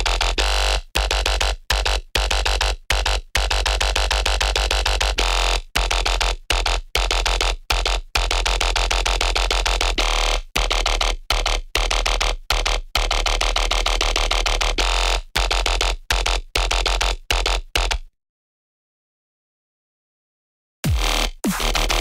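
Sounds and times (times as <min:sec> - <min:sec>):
distorted dubstep synth bass: 0:20.8 - 0:22.0.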